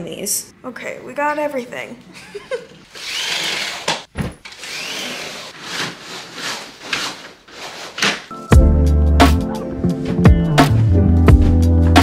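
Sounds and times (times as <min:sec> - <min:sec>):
window shades whirring: 0:02.8 - 0:08.3.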